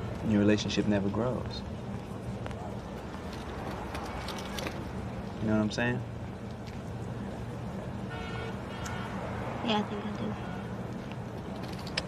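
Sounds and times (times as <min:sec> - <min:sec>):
street traffic rumble: 0:00.0 - 0:12.0
distant car horn: 0:08.0 - 0:09.3, 0:10.2 - 0:10.8.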